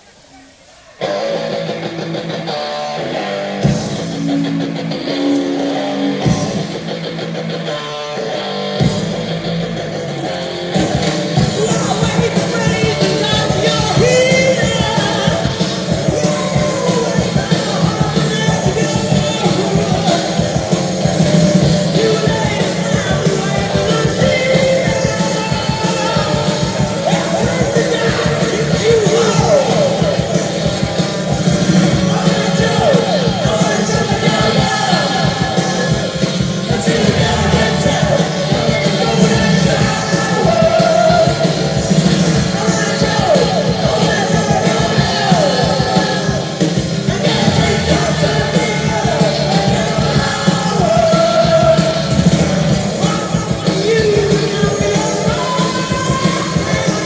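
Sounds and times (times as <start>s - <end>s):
electric guitars: 0.0s - 57.0s
person singing: 0.1s - 57.0s
steady drum beat: 1.5s - 57.0s.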